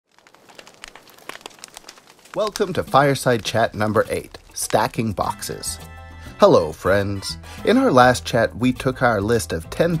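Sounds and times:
fire crackling: 0.0s - 10.0s.

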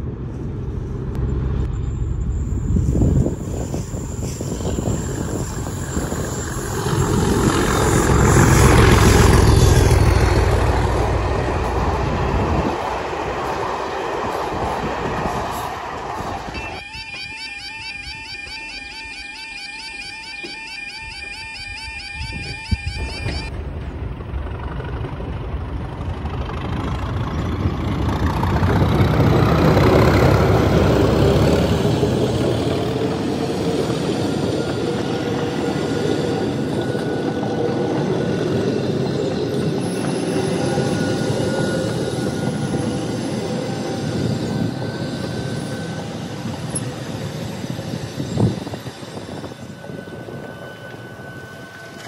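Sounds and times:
train wheels rolling on rail: 0.0s - 17.4s, 20.0s - 52.0s
diesel locomotive engine rumble: 0.0s - 52.0s.

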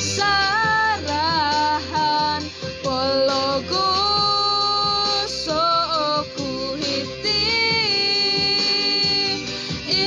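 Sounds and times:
girl singing: 0.0s - 10.0s
instrumental backing music: 0.0s - 10.0s.

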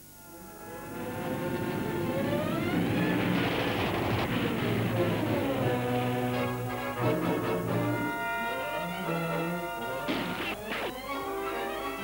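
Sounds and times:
faint hum: 0.0s - 12.0s
film soundtrack with gliding tones: 0.0s - 12.0s.

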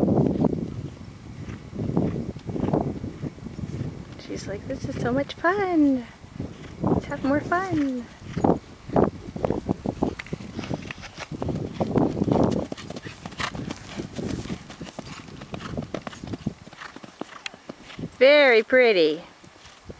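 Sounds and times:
horse hoofbeats on dirt: 0.0s - 19.9s.

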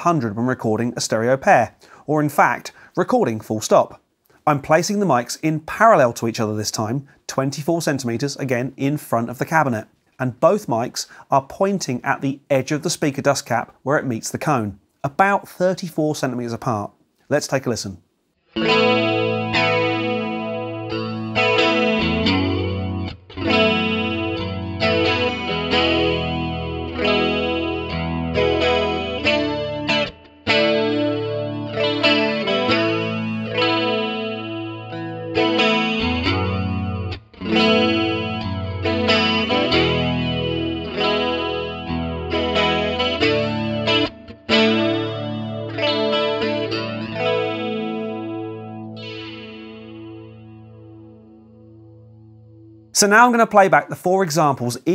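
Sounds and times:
electric guitar chords ringing: 18.5s - 53.2s.

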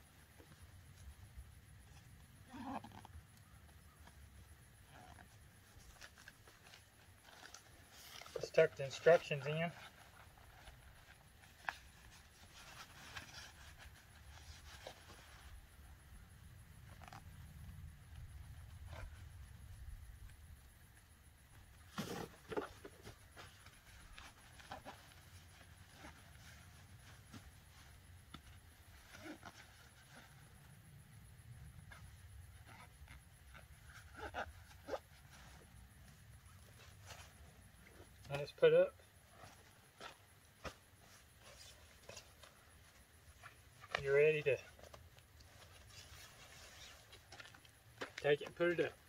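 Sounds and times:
clicks and knocks handling tent bag: 1.8s - 15.5s, 21.6s - 30.7s, 39.0s - 49.0s.

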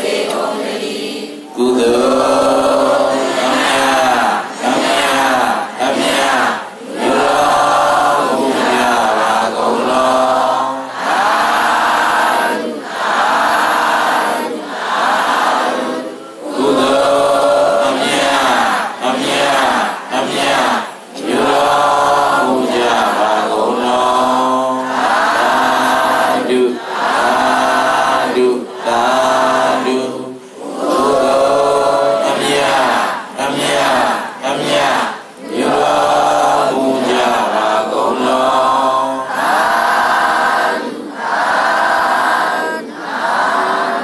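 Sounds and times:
congregation chanting in unison: 0.0s - 44.0s.

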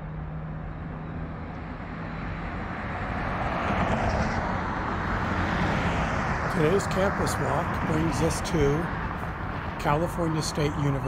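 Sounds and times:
car noise: 0.0s - 11.0s
passing vehicles: 0.0s - 11.0s.

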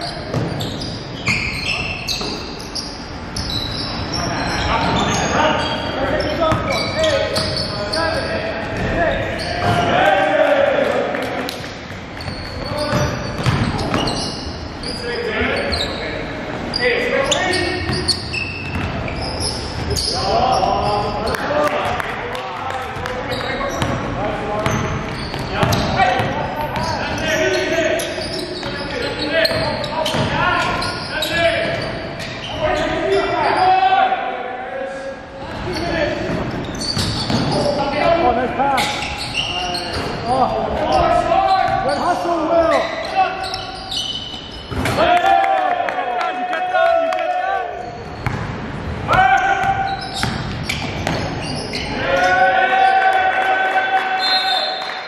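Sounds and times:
players calling out: 0.0s - 55.0s
basketball bouncing on wooden floor: 12.2s - 14.2s, 24.6s - 26.9s, 49.6s - 51.3s.

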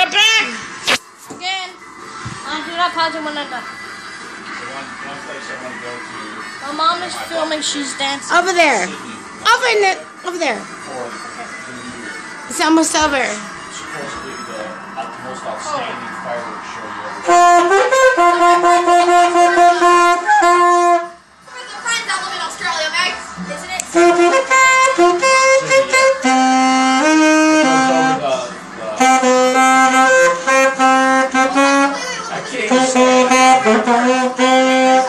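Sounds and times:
saxophone melody: 17.2s - 21.2s, 23.9s - 35.0s.

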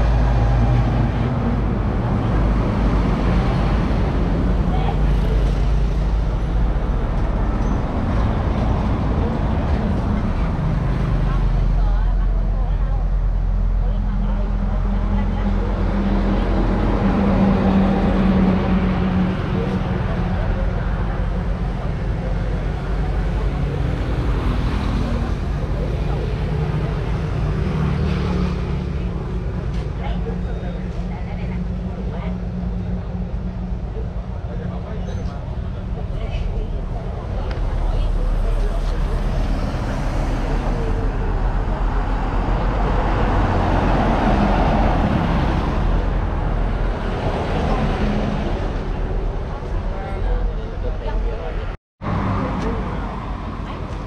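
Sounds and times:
large vehicle engine rumble: 0.0s - 54.0s
motorbikes passing: 13.8s - 54.0s.

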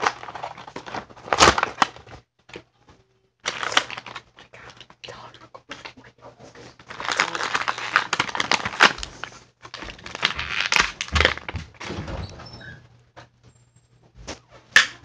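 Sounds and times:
plastic packaging crinkling: 0.0s - 2.2s, 3.4s - 5.3s, 6.6s - 11.9s.

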